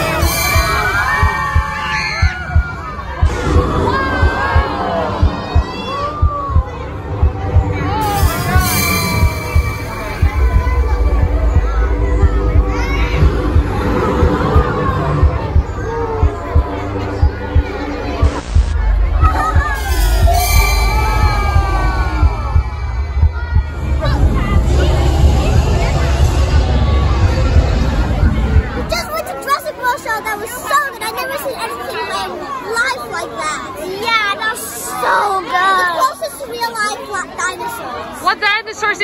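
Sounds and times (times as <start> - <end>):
music with pulsing thump: 0.0 - 29.0
children talking: 0.0 - 39.0
crowd hubbub: 0.0 - 39.0
sliding falling tones: 18.2 - 28.9.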